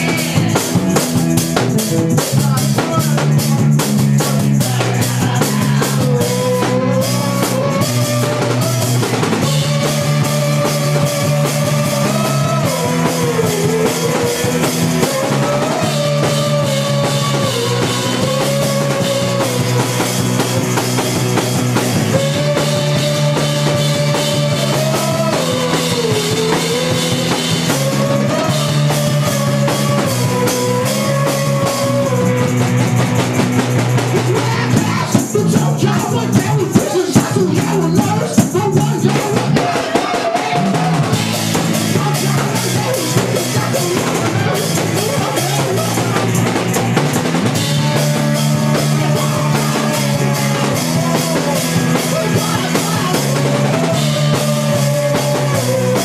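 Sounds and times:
electric guitar chords: 0.0 - 36.6, 37.2 - 56.0
drum kit beat: 0.0 - 56.0.

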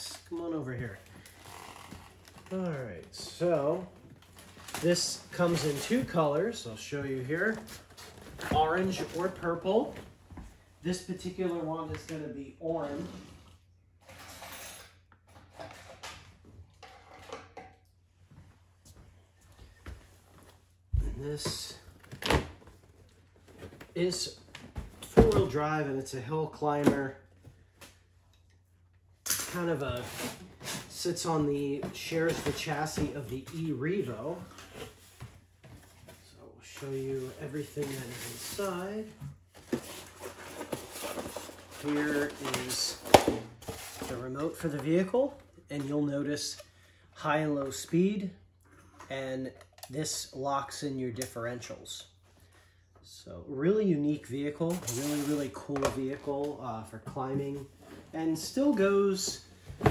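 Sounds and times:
rustling of objects handled: 0.0 - 17.4, 29.3 - 46.6, 54.6 - 59.9
cardboard rustling and scraping: 29.5 - 45.4, 54.7 - 55.6.

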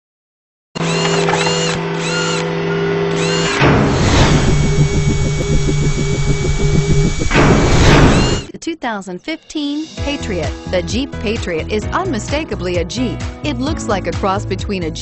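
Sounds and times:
mechanical whirring drone: 0.8 - 8.5
pulsing machine-like rhythm: 3.1 - 8.5
whoosh: 3.6 - 8.5.

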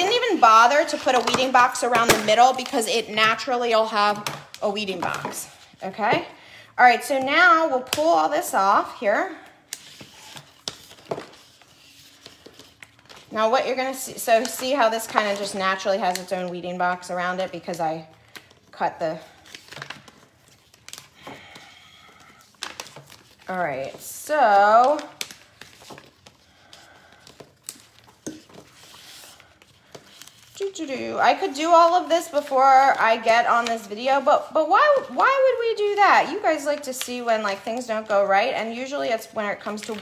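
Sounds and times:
vinyl sheet rustling: 0.0 - 6.3, 9.6 - 40.0
vinyl scraps crinkling: 19.3 - 24.0.

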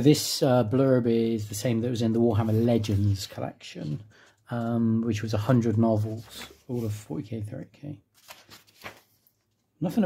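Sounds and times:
book pages turning: 5.5 - 7.2, 8.1 - 9.8.

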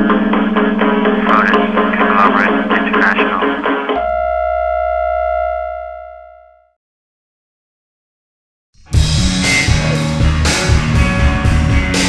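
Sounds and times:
steady electronic tone: 0.0 - 6.7.

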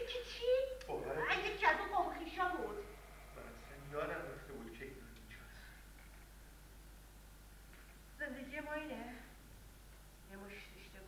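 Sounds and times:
woman speaking: 0.0 - 3.0, 8.2 - 9.4, 10.3 - 11.0.

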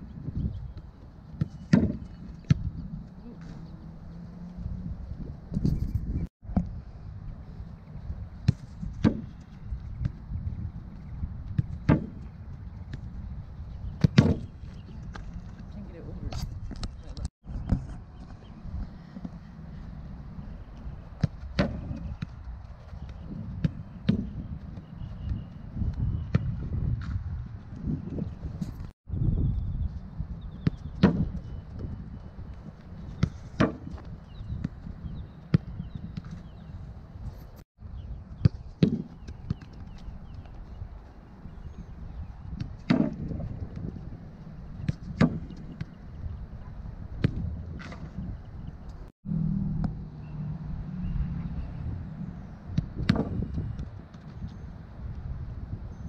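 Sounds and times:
wind rumble on microphone: 0.0 - 56.0.

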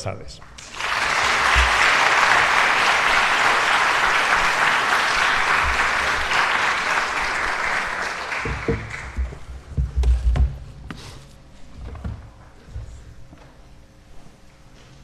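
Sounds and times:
audience applauding: 0.6 - 9.5.

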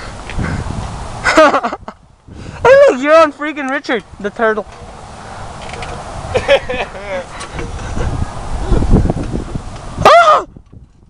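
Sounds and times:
wind rumbling on microphone: 0.0 - 3.3, 4.0 - 11.0
person laughing: 1.2 - 3.0, 6.3 - 8.2
camera handling noise: 5.6 - 6.0
loud short vocal cry: 10.0 - 10.5.

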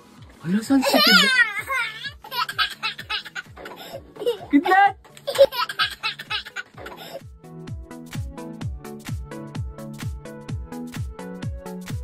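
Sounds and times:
toddler laughing: 0.8 - 7.2.

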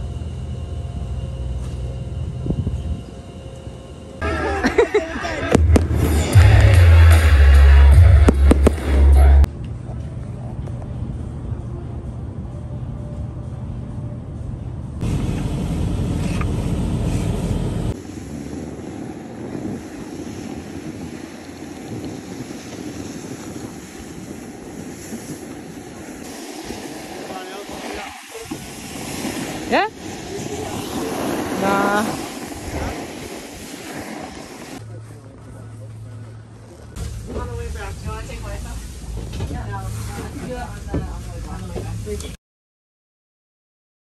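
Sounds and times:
quiet outdoor ambience: 0.0 - 5.6, 9.4 - 42.4
fireworks bangs and crackles: 4.8 - 9.5, 17.9 - 34.8
deep rumble: 5.2 - 9.9, 10.8 - 33.8.

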